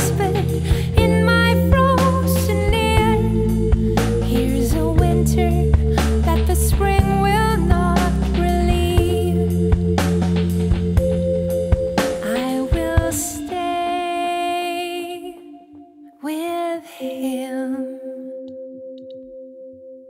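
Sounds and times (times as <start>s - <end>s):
drums and bass: 0.0s - 14.0s
sustained keyboard chords: 0.0s - 16.3s, 17.0s - 20.0s.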